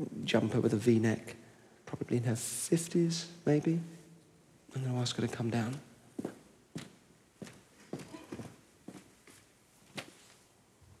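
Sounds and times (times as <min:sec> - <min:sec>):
hard-soled footsteps on stage floor: 0:06.2 - 0:10.3.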